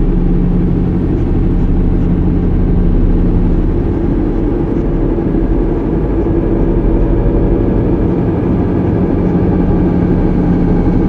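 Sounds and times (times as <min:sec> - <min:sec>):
dense low electronic drone: 0:00.0 - 0:11.0.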